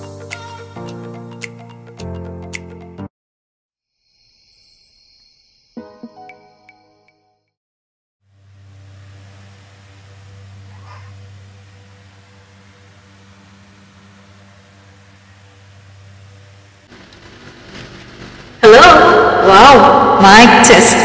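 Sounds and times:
low hum: 8.3s - 21.0s.

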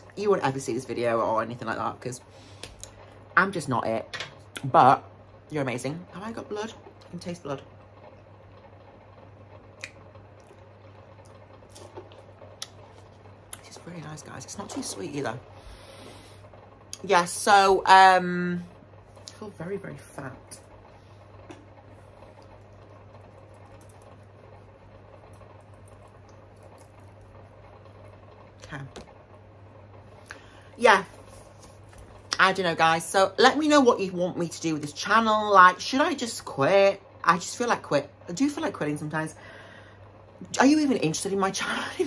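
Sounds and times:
low steady hum: 0.0s - 42.0s.

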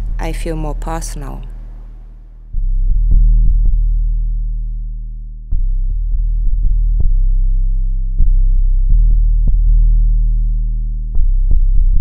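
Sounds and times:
deep bass drone: 0.0s - 12.0s.

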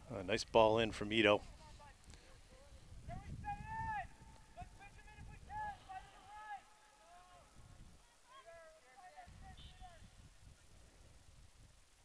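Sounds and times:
distant voices shouting calls: 3.1s - 10.2s.

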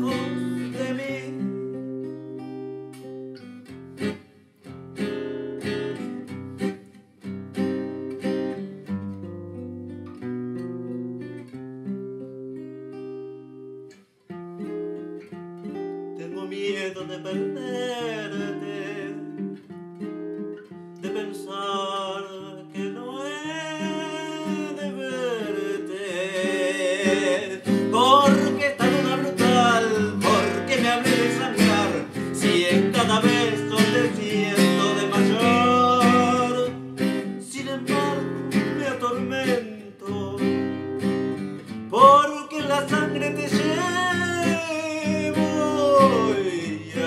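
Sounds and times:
man singing a tango: 0.0s - 1.6s, 16.2s - 19.4s, 21.0s - 41.0s, 41.9s - 47.0s
acoustic guitar chords: 0.0s - 47.0s.

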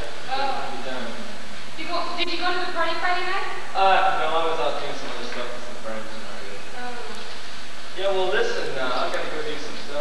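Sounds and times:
faint voices: 0.0s - 10.0s
steady buzzing hum with hiss: 0.0s - 10.0s.

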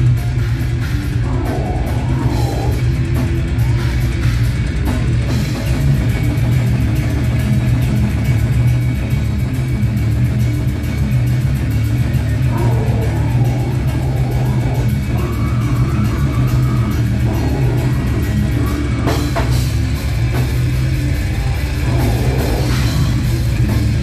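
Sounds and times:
bass guitar: 0.0s - 24.0s
distorted guitars: 0.0s - 24.0s
fast drumming: 0.0s - 24.0s.

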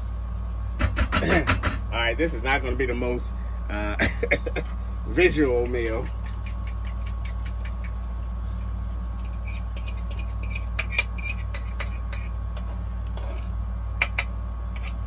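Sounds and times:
food frying in oil: 0.0s - 2.0s, 3.7s - 15.0s
low hum: 0.0s - 15.0s.

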